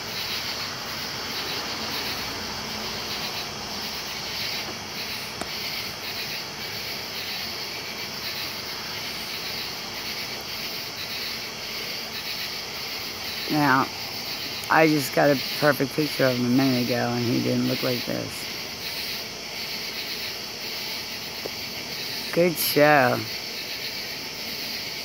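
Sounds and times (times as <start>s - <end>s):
steady high hiss: 0.0s - 25.0s.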